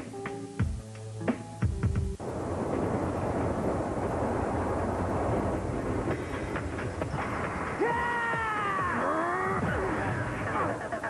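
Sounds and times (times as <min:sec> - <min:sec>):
train-like rumble: 0:02.2 - 0:09.0.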